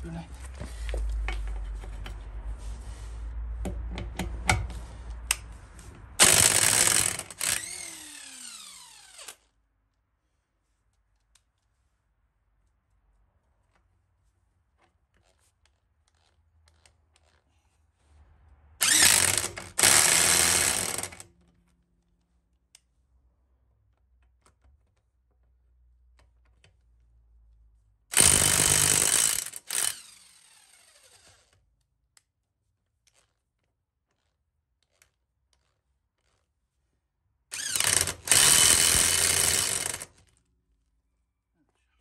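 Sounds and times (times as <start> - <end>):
impact wrench hammering lug nut: 6.2 - 8.3, 18.8 - 21.2, 28.1 - 30.2, 37.5 - 40.1
impact wrench motor whining: 6.2 - 9.4, 18.8 - 21.3, 28.1 - 31.5, 37.5 - 40.3.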